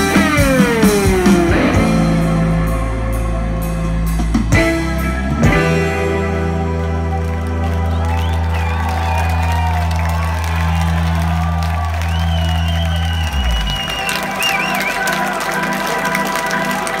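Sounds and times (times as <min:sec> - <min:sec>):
rock band sustained chord: 0:00.0 - 0:12.2
crowd cheering and whistling: 0:05.0 - 0:17.0.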